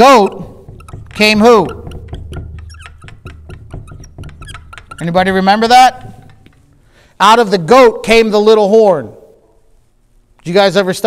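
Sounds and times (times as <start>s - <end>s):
marker writing on whiteboard: 0.0s - 6.7s.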